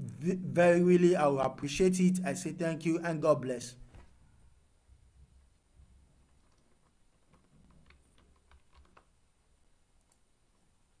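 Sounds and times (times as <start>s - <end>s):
faint low hum: 0.0s - 7.2s.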